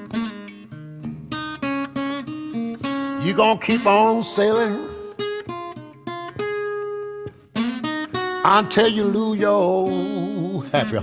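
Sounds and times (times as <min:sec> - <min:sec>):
acoustic blues guitar: 0:00.0 - 0:11.0
person singing: 0:03.2 - 0:05.2, 0:08.4 - 0:11.0.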